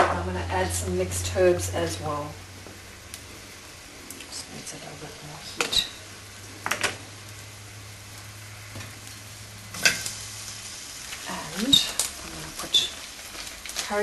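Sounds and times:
meat and onions sizzling in a pot: 0.1s - 14.0s.

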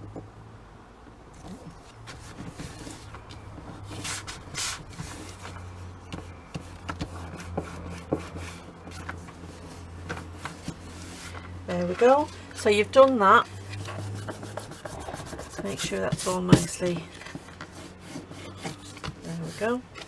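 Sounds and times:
paper rubbing and rustling: 1.5s - 12.4s, 13.5s - 19.8s.

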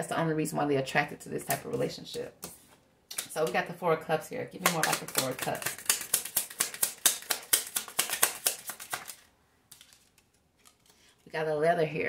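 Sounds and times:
cards shuffling: 4.6s - 11.3s.

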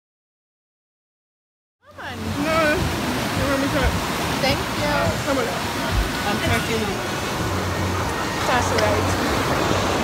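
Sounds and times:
people talking: 1.8s - 7.2s, 8.0s - 9.2s
sea surf rushing: 1.9s - 10.0s.

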